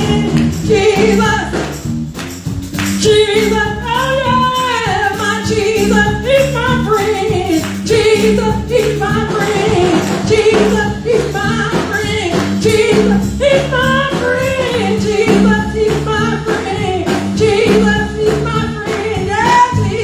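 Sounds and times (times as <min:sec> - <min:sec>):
woman singing gospel song: 0:00.0 - 0:01.7, 0:03.0 - 0:20.0
keyboard playing: 0:00.0 - 0:20.0
live drums: 0:00.0 - 0:20.0.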